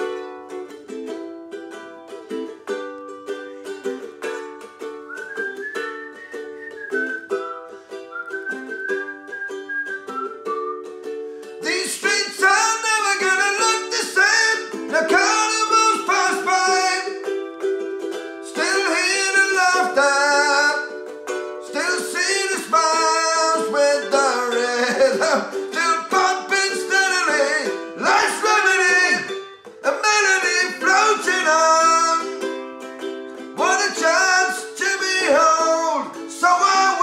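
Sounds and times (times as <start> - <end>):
ukulele strumming: 0.0 - 37.0
whistled melody: 1.6 - 28.6.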